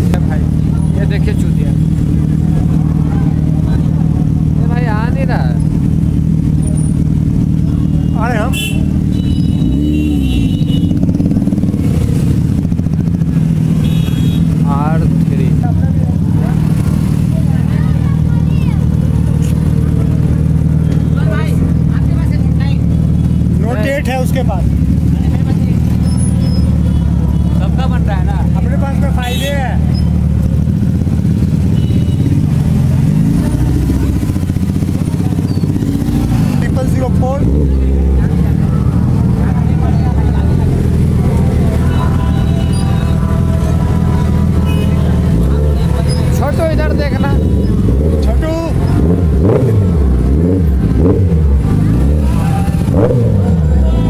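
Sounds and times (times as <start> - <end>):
motorcycle engines running: 0.0 - 54.0
voices calling: 0.0 - 54.0.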